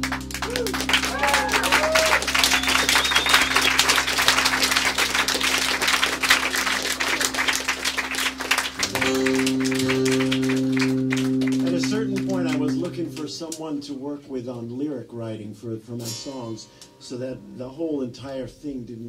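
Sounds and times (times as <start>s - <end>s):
audience applause: 0.0s - 13.3s
guitar drone: 0.0s - 13.8s.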